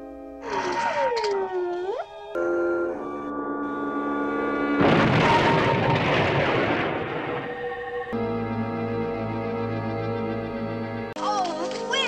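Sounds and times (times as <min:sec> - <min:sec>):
rushing explosion-like sound effect: 0:04.7 - 0:07.6.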